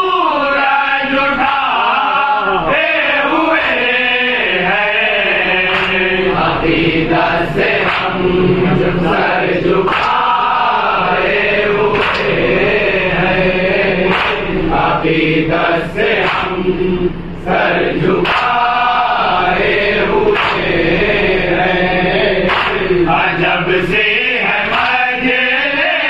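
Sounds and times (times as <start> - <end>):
men chanting together: 0.0 - 26.0.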